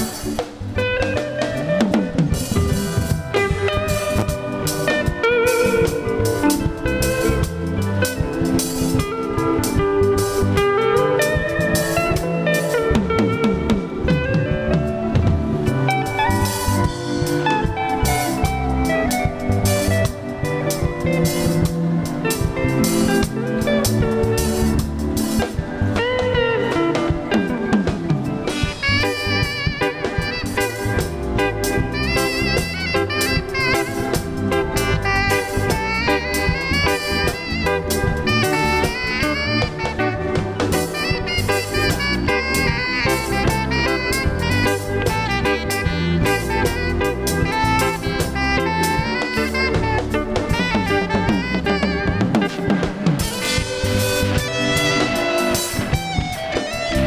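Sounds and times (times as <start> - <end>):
drum kit beat: 0.0 - 57.0
electric guitar lines: 0.0 - 57.0.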